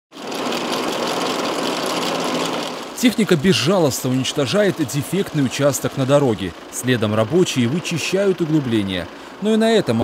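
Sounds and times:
milling drum grinding road surface: 0:00.1 - 0:10.0
tractor engine hum: 0:00.1 - 0:10.0.

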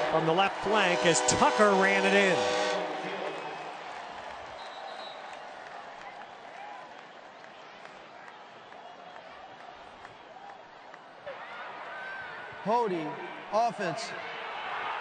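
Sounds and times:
stadium crowd voices: 0:00.0 - 0:15.0.

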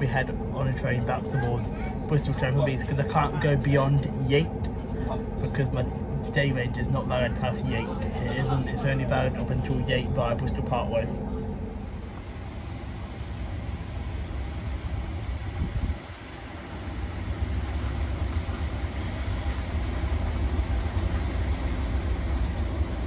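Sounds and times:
diesel locomotive engine rumble: 0:00.0 - 0:23.0.

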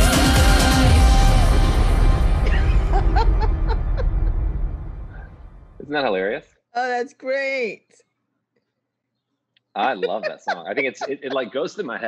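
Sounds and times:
pop song with singing: 0:00.0 - 0:03.8, 0:09.8 - 0:12.0
person chuckling: 0:02.4 - 0:04.3, 0:09.8 - 0:12.0.

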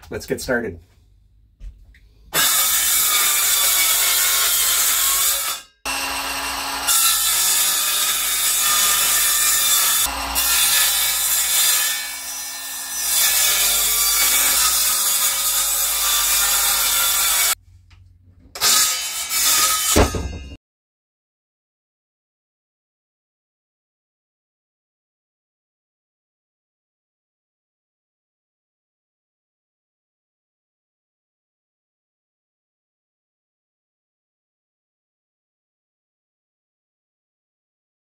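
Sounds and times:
circular saw cutting plywood: 0:02.3 - 0:17.6, 0:18.5 - 0:20.4.

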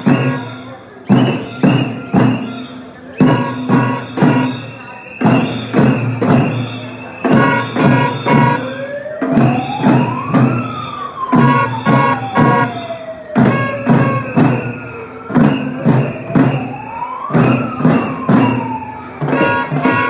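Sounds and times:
drumbeats in steady rhythm: 0:00.0 - 0:20.0
marching crowd: 0:00.0 - 0:20.0
siren-like wail: 0:00.0 - 0:20.0.

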